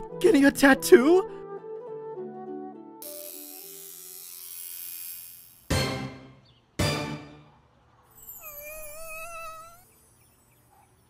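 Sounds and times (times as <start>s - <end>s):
soft background music: 0.0s - 4.2s
tattoo machine buzzing: 3.0s - 5.7s.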